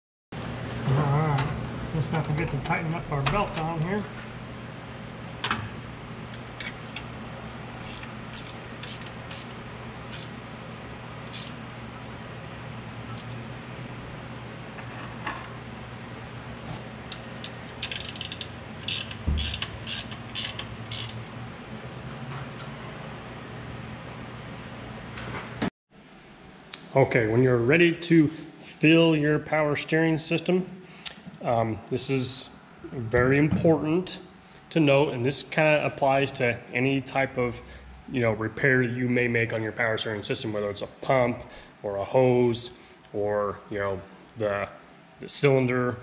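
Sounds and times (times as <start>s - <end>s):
steady low hum: 0.4s - 46.0s
hand ratchet clicking: 7.8s - 9.5s, 10.1s - 10.3s, 11.3s - 11.6s, 17.8s - 21.2s.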